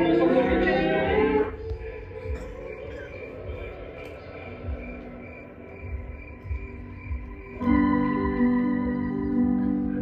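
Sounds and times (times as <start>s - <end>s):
crickets chirping: 0.0s - 10.0s
faint held drone: 0.0s - 10.0s
loud sustained music chords: 0.0s - 10.0s.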